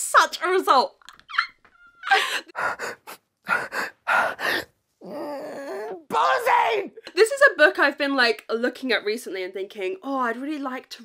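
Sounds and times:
breathy excited gasps: 2.1s - 6.0s.

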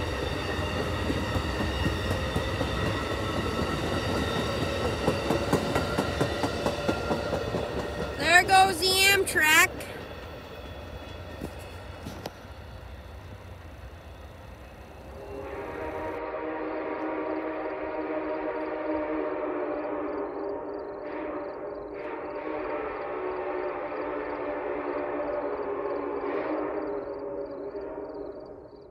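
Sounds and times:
train clanks: 0.0s - 16.2s
train rumbling: 0.0s - 28.9s.

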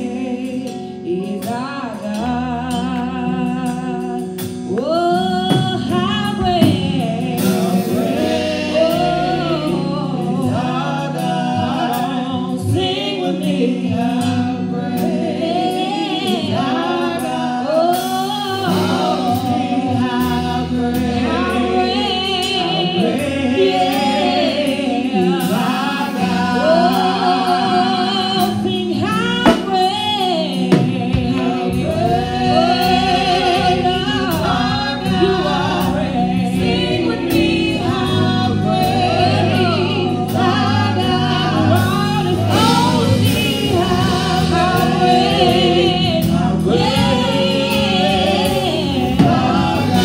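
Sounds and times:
gospel singers in harmony: 0.0s - 50.0s
instrumental backing music: 0.0s - 50.0s.

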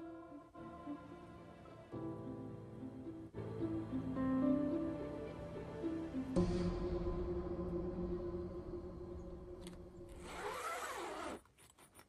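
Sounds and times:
background music with held tones: 0.0s - 10.4s.

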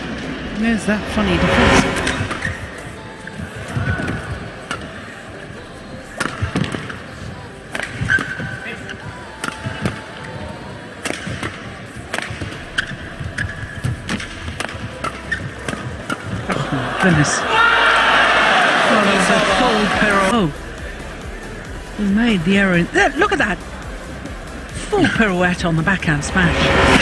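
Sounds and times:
crowd hum: 0.0s - 27.0s
rackets hitting shuttlecock: 6.1s - 7.1s, 7.7s - 10.0s, 11.0s - 16.7s
shoe squeaks on court: 15.0s - 16.0s.

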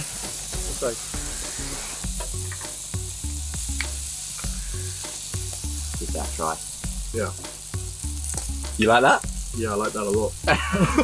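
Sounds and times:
meat sizzling on a grill: 0.0s - 11.0s.

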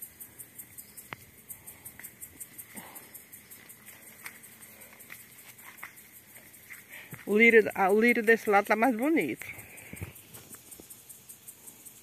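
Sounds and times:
high-pitched insect chirping: 0.0s - 12.0s.

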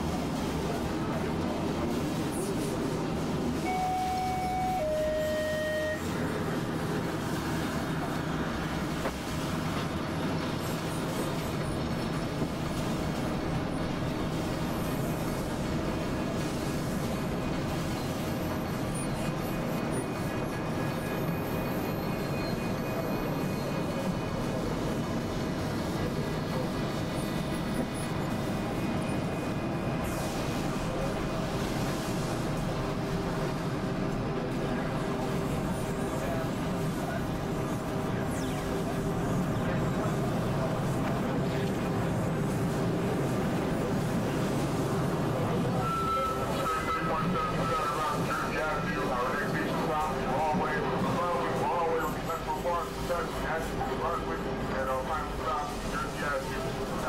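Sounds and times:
brief higher tones: 3.6s - 6.1s
faint held tones: 3.6s - 6.1s
low held tone: 3.6s - 6.1s.

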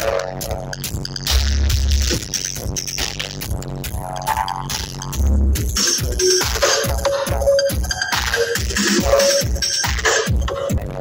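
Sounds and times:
dub music over loud speakers: 0.0s - 11.0s.

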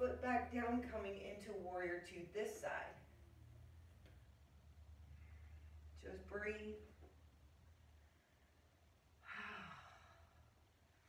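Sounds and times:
woman sighing: 9.2s - 10.3s.

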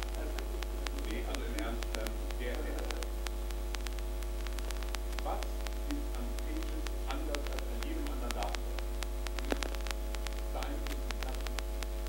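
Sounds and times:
electrical mains hum: 0.0s - 12.0s
faint clicks: 0.0s - 12.0s.

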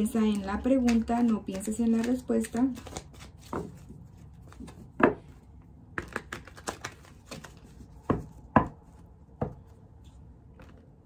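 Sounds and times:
cards being shuffled: 0.0s - 5.1s, 6.0s - 8.4s.

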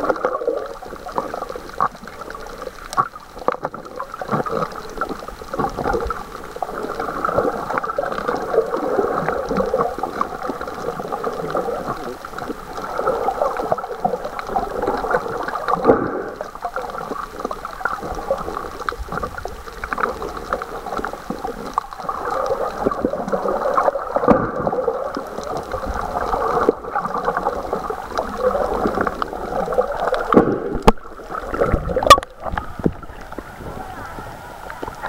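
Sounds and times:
small crackles: 0.0s - 35.0s
water gurgling underwater: 0.0s - 35.0s
knock underwater: 31.6s - 33.4s.

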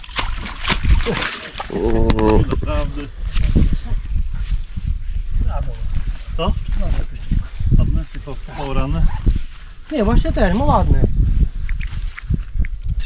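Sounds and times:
fish handling rustles and slaps: 0.0s - 2.4s.

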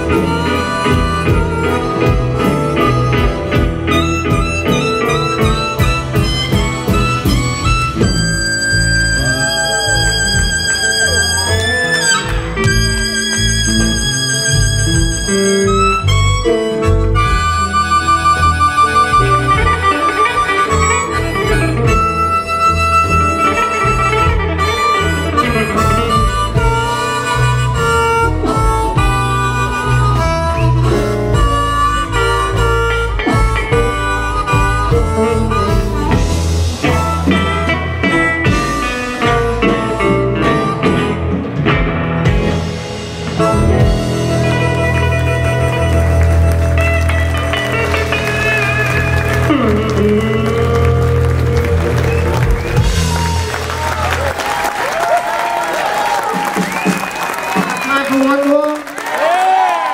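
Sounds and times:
harmonica playing lead: 0.0s - 54.7s
bass guitar: 0.0s - 58.2s
drums: 0.0s - 58.3s
electric guitars: 0.0s - 59.9s.

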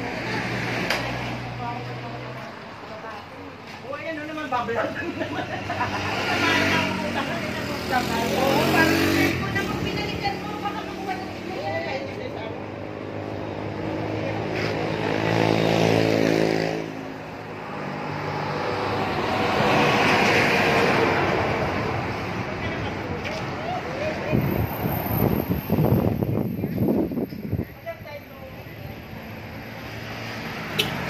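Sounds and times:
vehicles passing: 0.0s - 31.0s.

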